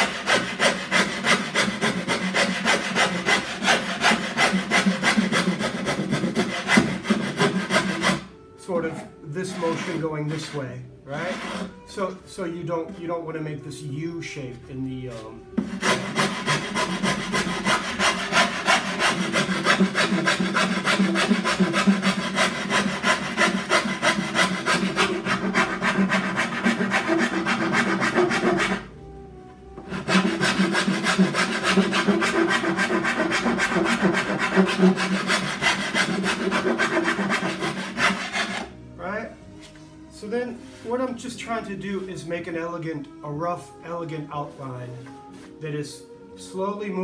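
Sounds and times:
coarse file rasping on wood: 0:00.0 - 0:08.3, 0:09.4 - 0:10.6, 0:11.2 - 0:11.8, 0:15.6 - 0:28.9, 0:29.9 - 0:38.7.

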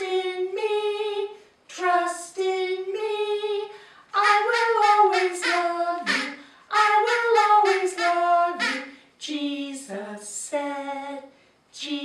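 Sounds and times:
women singing unaccompanied: 0:00.0 - 0:12.0.

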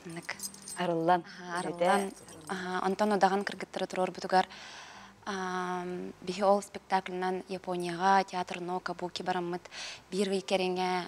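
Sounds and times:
person talking: 0:00.0 - 0:03.2.

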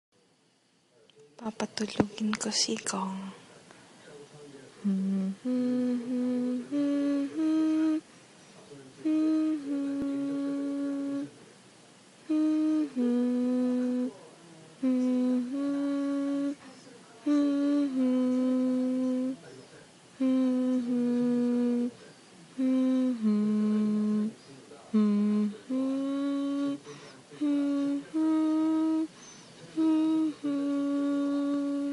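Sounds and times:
person humming a lullaby: 0:04.8 - 0:08.1, 0:09.0 - 0:11.4, 0:12.2 - 0:14.2, 0:14.8 - 0:19.4, 0:20.2 - 0:31.9.

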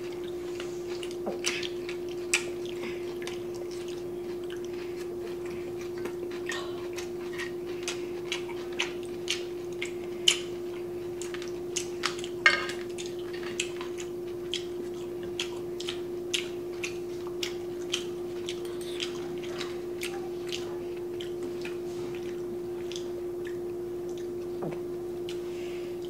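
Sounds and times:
chewing and lip smacks: 0:00.0 - 0:25.6
steady low hum: 0:00.0 - 0:26.0
chopsticks and spoon tapping dishes: 0:12.0 - 0:14.0.

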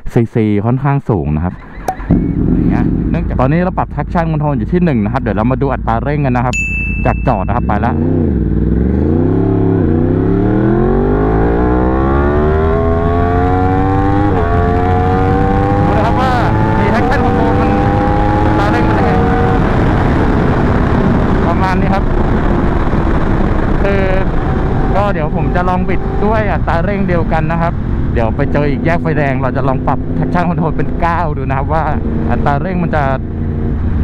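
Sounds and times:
motorcycle engine accelerating: 0:01.6 - 0:34.0
wind rush: 0:13.9 - 0:34.0.

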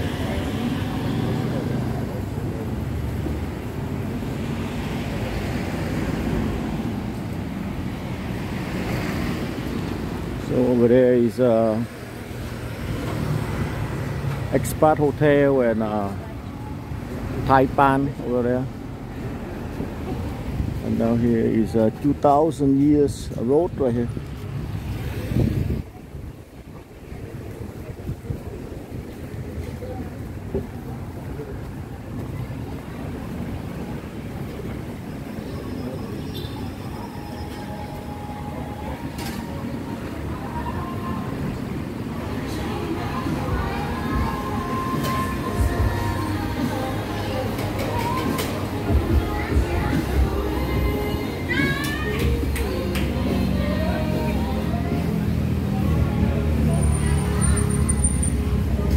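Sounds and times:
road noise: 0:00.0 - 0:58.9
traffic rumble: 0:00.0 - 0:58.9
vehicle engines running: 0:00.0 - 0:58.9.

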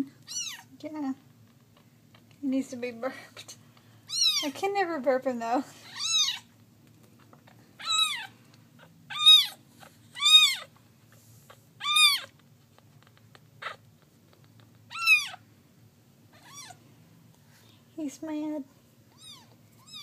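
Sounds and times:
kitten mewing: 0:04.1 - 0:04.5, 0:05.8 - 0:06.5, 0:07.4 - 0:10.7, 0:11.5 - 0:12.4, 0:13.0 - 0:15.4, 0:16.3 - 0:16.8.

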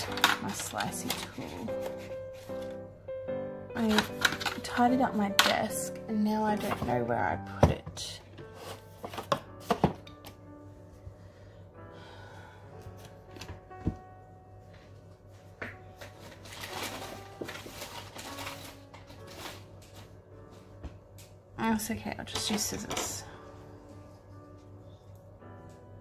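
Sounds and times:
soft background music: 0:00.0 - 0:26.0.

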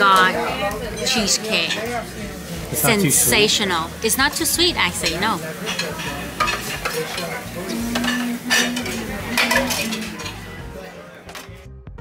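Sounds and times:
silverware clinking on plates: 0:00.0 - 0:02.0, 0:04.9 - 0:11.6.

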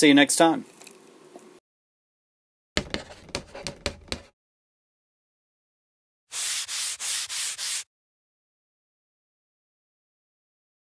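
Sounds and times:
chalk scratching on chalkboard: 0:02.8 - 0:04.3, 0:06.3 - 0:07.9.

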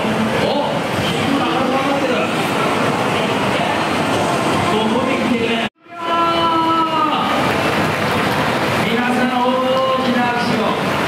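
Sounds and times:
man speaking over loudspeaker: 0:00.0 - 0:04.0, 0:04.7 - 0:07.5, 0:08.8 - 0:11.0
crowd noise in large hall: 0:00.0 - 0:11.0.

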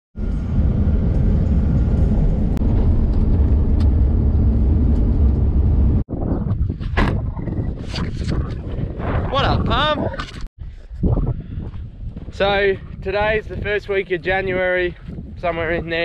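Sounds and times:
vehicle road rumble: 0:00.2 - 0:10.5.

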